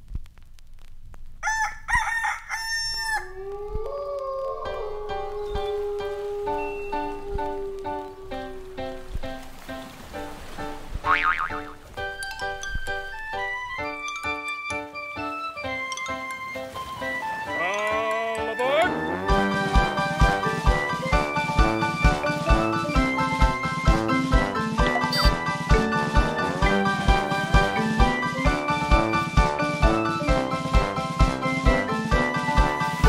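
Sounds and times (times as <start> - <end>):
rooster crowing: 1.4 - 9.1
music with sustained notes: 4.6 - 11.0, 11.6 - 33.0
wavering wordless voice: 17.5 - 21.5, 26.1 - 28.4.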